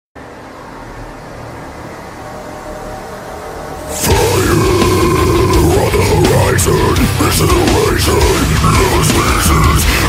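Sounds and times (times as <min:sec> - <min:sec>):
low noisy rumble: 0:00.2 - 0:10.0
metal band playing: 0:03.7 - 0:10.0.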